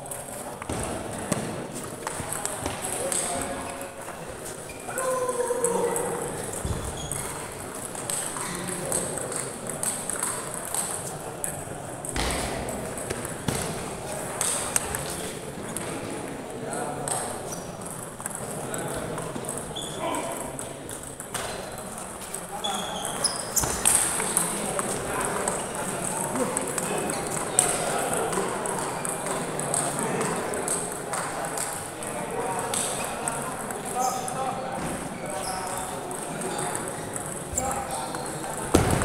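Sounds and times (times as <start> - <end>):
hum of many voices: 0.0 - 39.0.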